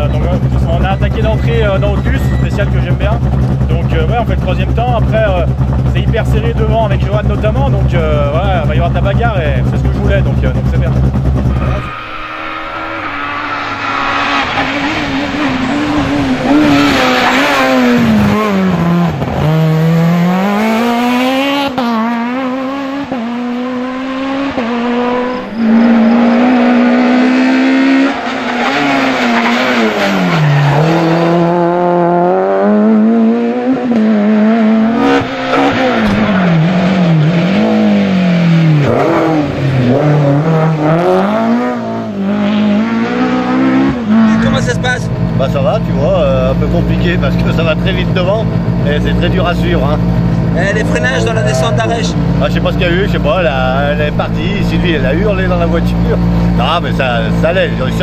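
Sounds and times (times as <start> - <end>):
rally car engines revving: 0.0 - 58.0.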